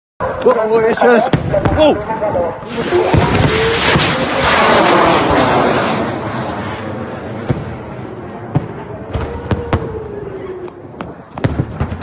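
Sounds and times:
explosion cracks: 0:02.6 - 0:10.2
wailing tone falling in pitch: 0:08.9 - 0:11.1.

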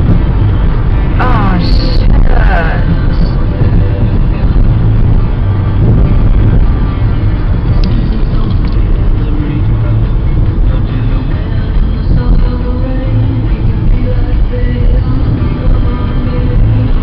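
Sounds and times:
music playing: 0:00.0 - 0:17.0
road and engine rumble: 0:00.0 - 0:17.0.

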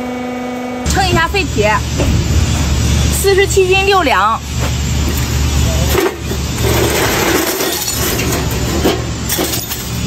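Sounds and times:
steady low rumble: 0:00.8 - 0:10.0
steel plates clinking and scraping: 0:05.2 - 0:10.0.

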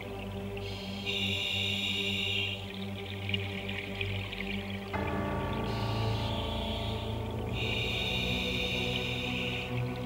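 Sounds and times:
ambient drone music: 0:00.0 - 0:10.0.

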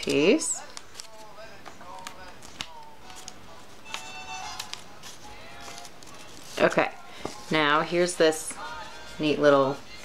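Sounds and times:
paper strips clicking and rustling: 0:00.0 - 0:07.4
faint background music: 0:00.0 - 0:10.0.

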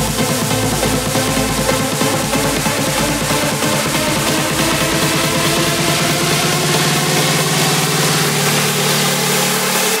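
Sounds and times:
dense noise wash: 0:00.0 - 0:10.0.

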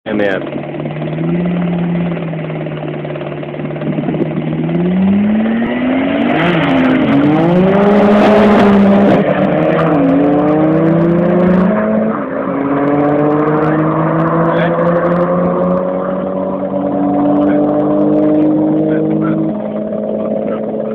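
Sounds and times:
racing car engines revving: 0:00.1 - 0:20.9.

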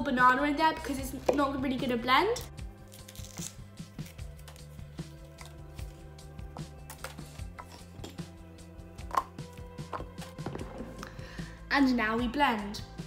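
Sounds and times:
quiet background music: 0:00.0 - 0:13.0.

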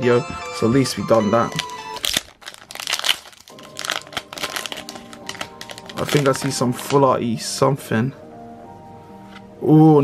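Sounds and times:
foil wrapper crinkling: 0:01.4 - 0:07.0.

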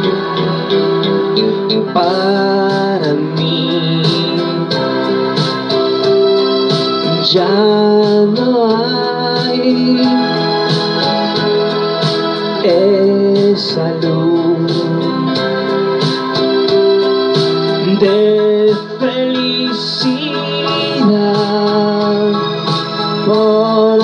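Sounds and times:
keyboard ballad backing track: 0:00.0 - 0:24.0.

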